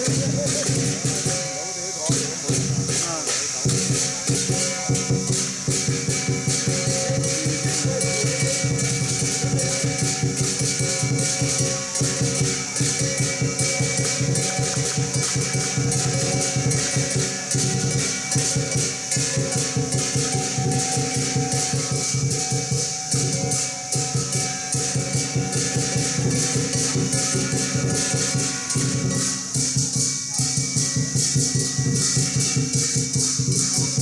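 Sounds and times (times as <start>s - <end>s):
cymbals crashing: 0.0s - 34.0s
held ringing tones: 0.0s - 34.0s
large drum beating: 0.0s - 34.0s.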